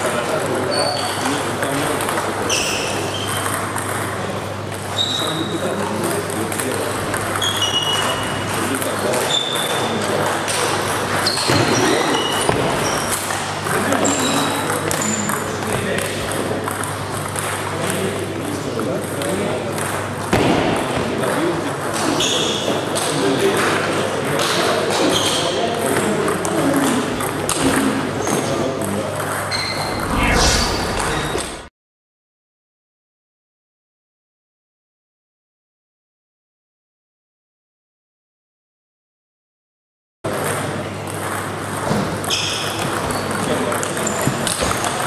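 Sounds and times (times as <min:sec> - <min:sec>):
loud swish: 0:29.7 - 0:31.7
low hum: 0:29.7 - 0:31.7.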